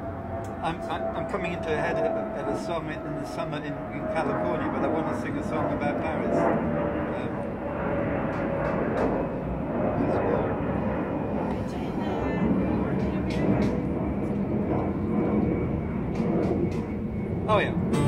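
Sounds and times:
steady low rumble: 0:00.0 - 0:18.0
group of people talking: 0:11.4 - 0:15.6.

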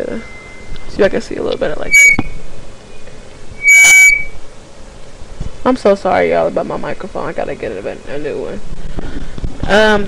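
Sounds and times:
microphone distortion squeal: 0:00.0 - 0:01.0, 0:01.8 - 0:04.4.

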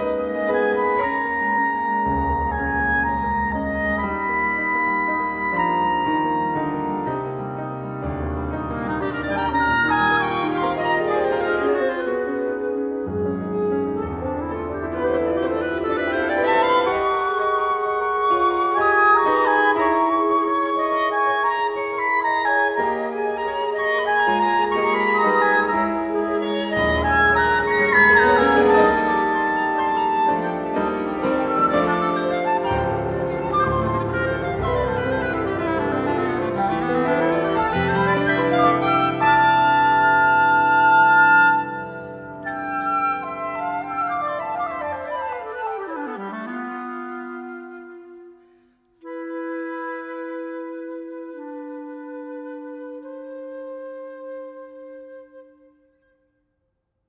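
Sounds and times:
flute clarinet and piano trio: 0:00.0 - 0:56.3.

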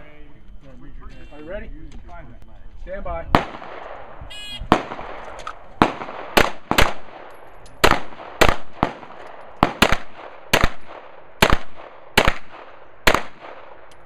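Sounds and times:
pistol shots: 0:03.3 - 0:14.0.

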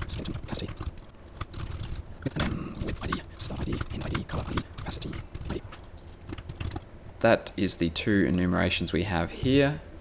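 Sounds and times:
typing on computer keyboard: 0:00.0 - 0:02.0, 0:02.8 - 0:06.9.

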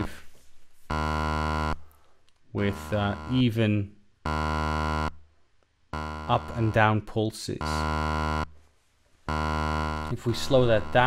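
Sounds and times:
steady low synthesizer tone: 0:00.9 - 0:01.9, 0:02.6 - 0:03.7, 0:04.3 - 0:05.2, 0:06.0 - 0:08.5, 0:09.3 - 0:11.0.

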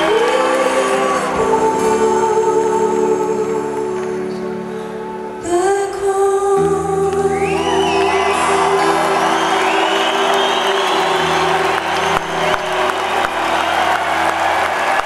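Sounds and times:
crowd cheering and whooping: 0:00.0 - 0:01.8, 0:07.4 - 0:15.0
crowd applause: 0:00.0 - 0:02.4, 0:07.4 - 0:15.0.

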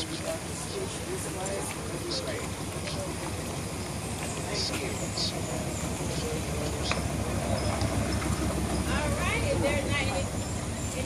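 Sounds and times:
indistinct voices: 0:00.0 - 0:11.0
steady low rumble: 0:00.0 - 0:11.0.

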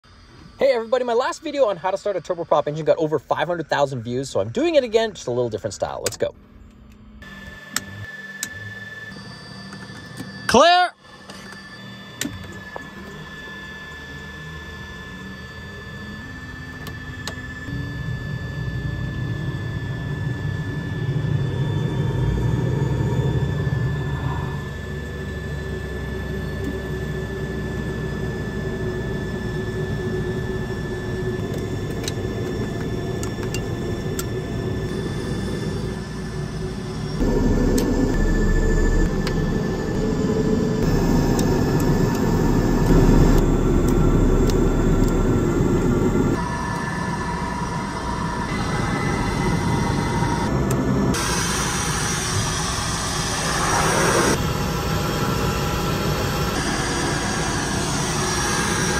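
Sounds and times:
propeller drone: 0:00.0 - 0:58.9
turbine whine: 0:00.0 - 0:58.9.

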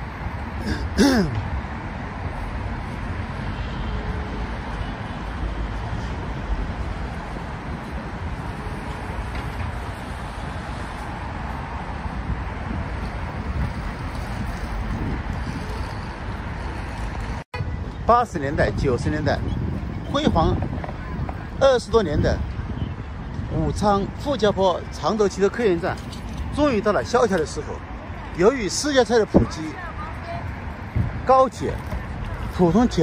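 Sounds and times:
passing vehicles rumbling: 0:00.0 - 0:33.0.

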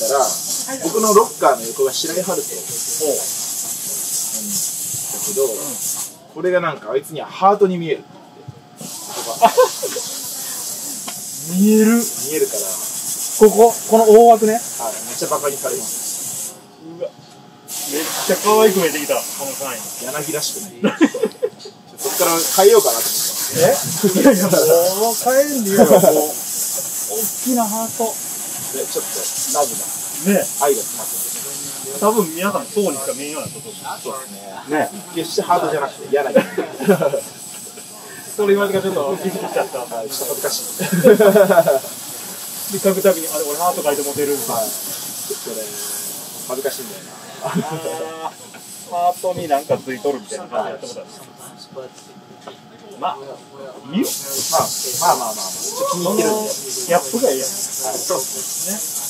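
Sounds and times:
steady high hiss: 0:00.0 - 0:08.0, 0:08.8 - 0:52.0, 0:53.0 - 0:59.0
men talking: 0:00.0 - 0:10.3, 0:11.1 - 0:59.0
people laughing: 0:09.1 - 0:10.3, 0:20.6 - 0:21.8, 0:23.4 - 0:24.9, 0:25.6 - 0:26.4, 0:36.0 - 0:42.1, 0:47.2 - 0:48.5.

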